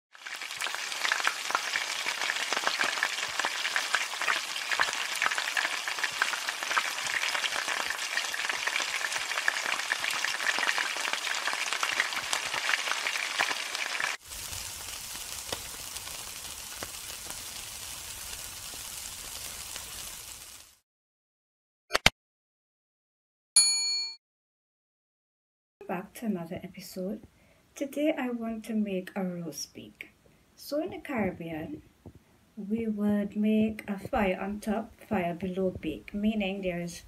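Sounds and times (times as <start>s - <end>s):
food sizzling in hot oil: 0.1s - 20.8s.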